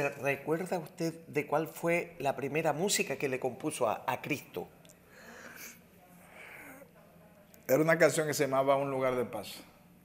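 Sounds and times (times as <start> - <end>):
man breathing softly: 5.0 - 6.9.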